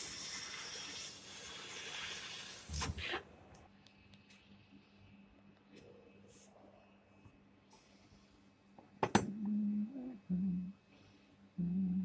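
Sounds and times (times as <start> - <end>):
person humming low notes: 9.3 - 10.8, 11.6 - 12.0.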